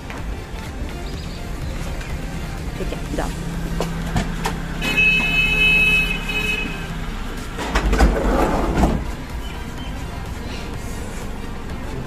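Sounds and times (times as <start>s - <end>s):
low engine hum: 0.0s - 12.0s
street noise: 0.0s - 12.0s
vehicle horn held: 4.8s - 6.8s.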